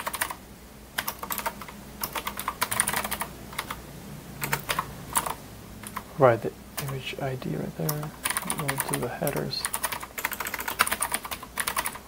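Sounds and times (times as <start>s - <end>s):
typing on a computer keyboard: 0.0s - 0.4s, 1.0s - 3.8s, 4.4s - 6.0s, 6.8s - 7.0s, 7.8s - 12.0s.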